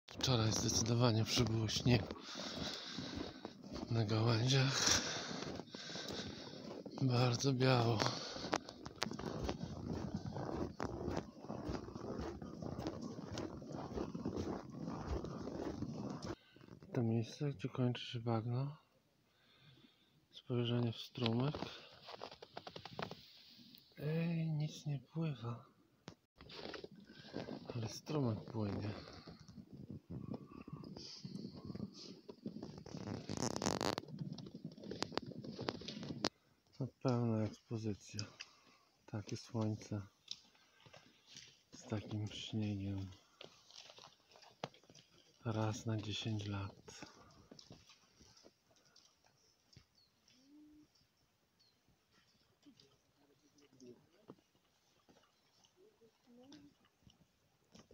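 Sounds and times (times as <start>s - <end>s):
footsteps crunching through snow: 0.2s - 16.4s
rustling: 26.4s - 36.5s.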